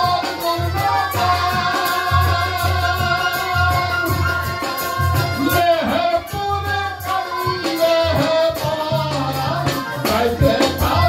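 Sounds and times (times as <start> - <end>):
instrumental accompaniment: 0.0 - 11.0
light percussion: 0.0 - 11.0
man singing into a microphone: 0.0 - 11.0.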